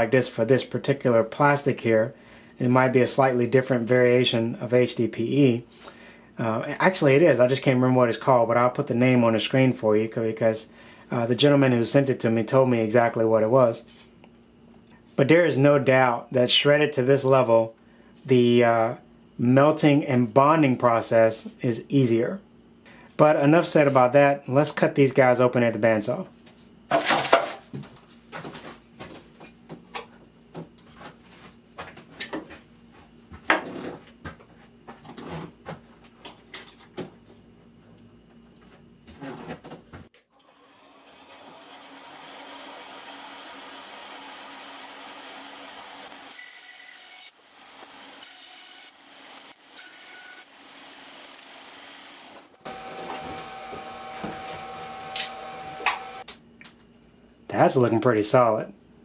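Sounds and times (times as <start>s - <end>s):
bandsaw cutting plastic: 40.3s - 56.2s
steady machine hum: 48.8s - 59.0s.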